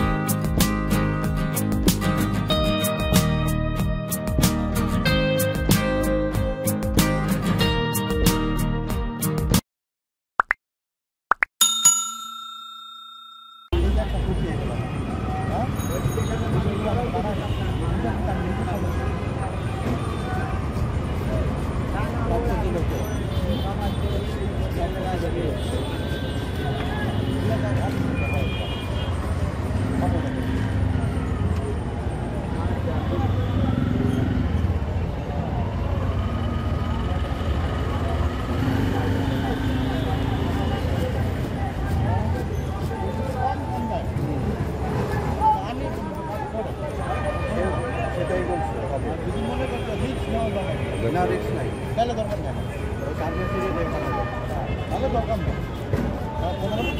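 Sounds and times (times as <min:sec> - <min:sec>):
bell ding: 0:11.6 - 0:13.8
traffic engine rumble: 0:13.8 - 0:56.9
people talking: 0:38.9 - 0:56.9.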